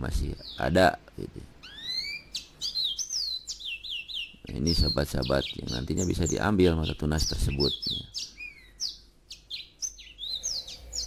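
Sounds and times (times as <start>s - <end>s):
small bird calling: 0.0s - 11.0s.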